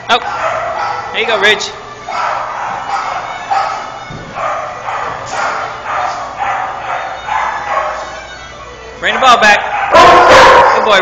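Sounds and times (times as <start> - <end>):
dogs barking: 0.0 - 8.3, 9.0 - 11.0.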